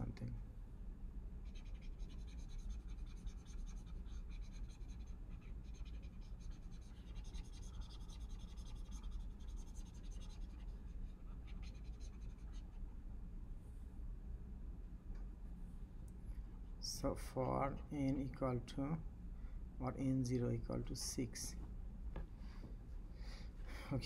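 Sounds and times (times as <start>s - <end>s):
steady low hum: 0.0s - 24.0s
stylus scratching and tapping: 1.5s - 12.7s.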